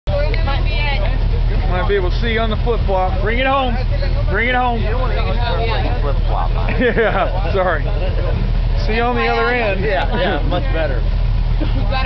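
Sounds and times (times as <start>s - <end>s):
buggy engine idling: 0.0s - 12.0s
people talking: 0.1s - 12.0s.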